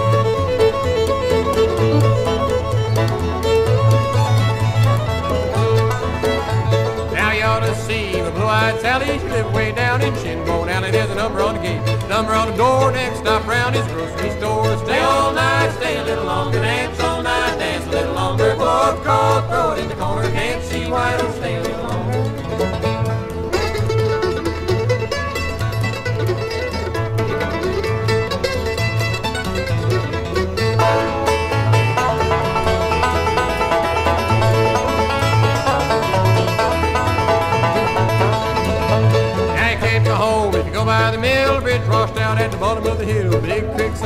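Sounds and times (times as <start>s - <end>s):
acoustic guitar rhythm: 0.0s - 44.0s
banjo playing lead: 0.0s - 44.0s
bass notes: 0.0s - 44.0s
mandolin: 0.0s - 44.0s.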